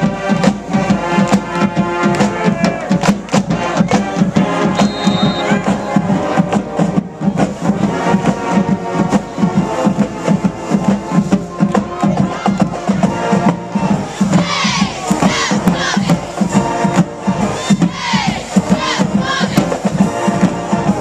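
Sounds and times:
steady drum beat: 0.0 - 21.0
trombones and trumpets held notes: 0.0 - 21.0.

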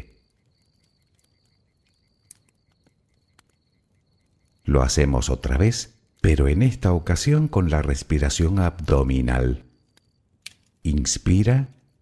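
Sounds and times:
campfire crackling: 0.0 - 12.0
crickets chirping: 0.0 - 12.0.

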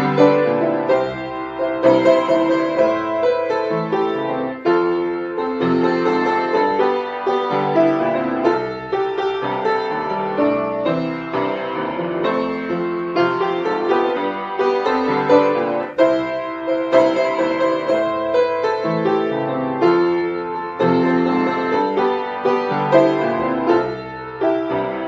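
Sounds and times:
upright piano pop song: 0.0 - 25.0.

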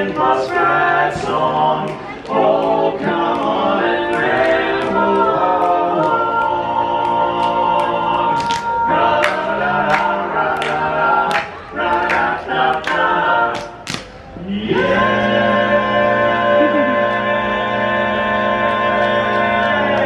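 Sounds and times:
barbershop quartet singing: 0.0 - 20.0.

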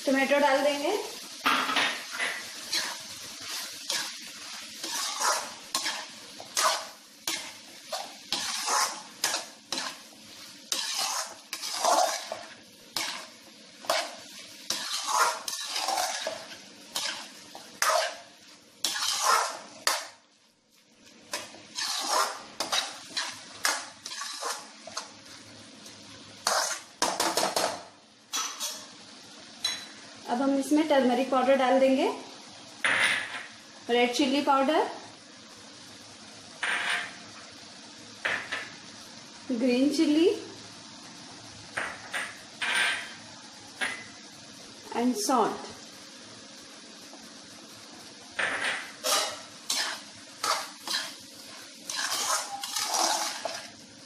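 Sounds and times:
metal spatula scraping a wok: 2.0 - 10.1, 10.7 - 20.0, 21.3 - 25.1, 26.4 - 26.9, 28.3 - 28.9, 48.9 - 53.7.

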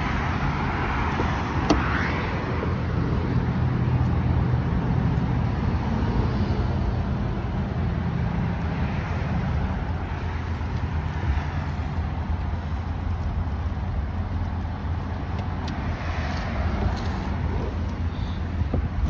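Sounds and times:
motor vehicle low rumble: 0.0 - 19.0.

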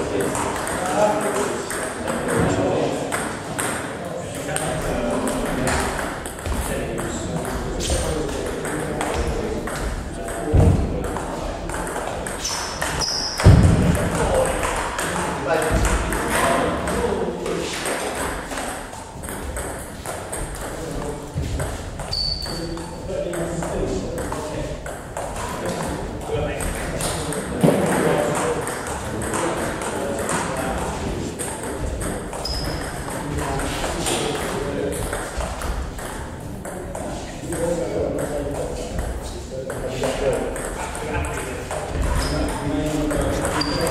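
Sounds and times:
table tennis ball bouncing: 0.0 - 43.9
high squeaks: 12.4 - 13.4, 22.0 - 22.7, 32.4 - 32.9, 43.6 - 43.9.

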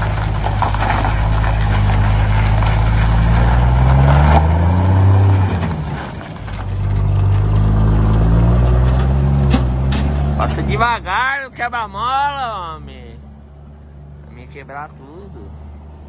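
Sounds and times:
diesel truck engine accelerating: 0.0 - 16.0.

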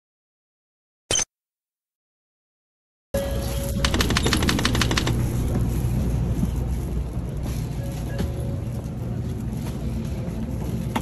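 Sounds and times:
train car low rumble: 3.2 - 11.0
rapid sharp clicks: 3.8 - 5.4.

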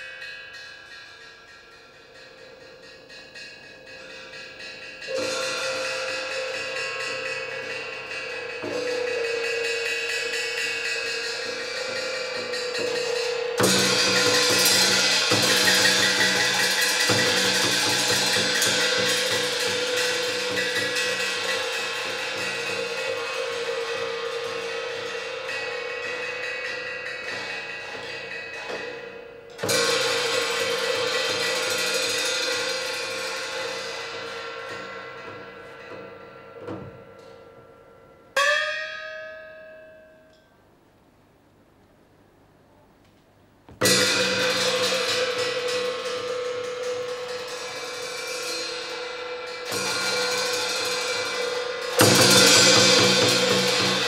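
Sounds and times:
cymbals and drums: 0.0 - 39.4, 43.6 - 54.0.

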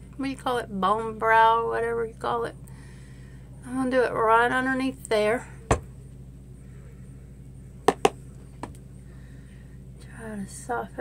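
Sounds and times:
low room hum: 0.0 - 11.0
brush tapping a palette: 7.8 - 8.2.

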